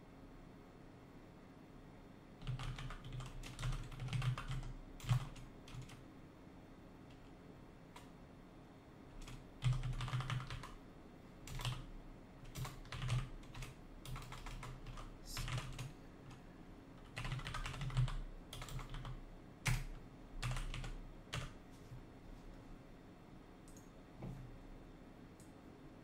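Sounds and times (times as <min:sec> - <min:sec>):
typing on computer keyboard: 0:02.4 - 0:06.0, 0:09.2 - 0:10.8, 0:11.4 - 0:16.4, 0:17.0 - 0:21.6.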